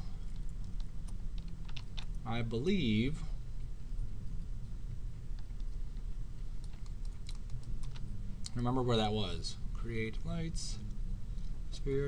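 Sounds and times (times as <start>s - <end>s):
steady low hum: 0.0s - 12.0s
computer keyboard and mouse clicks: 6.6s - 8.0s.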